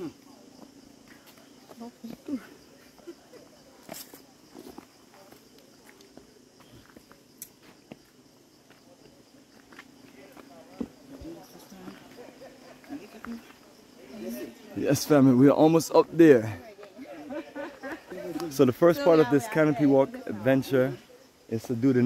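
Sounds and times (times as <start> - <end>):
footsteps on stone trail: 0.6 - 3.2, 3.8 - 12.2.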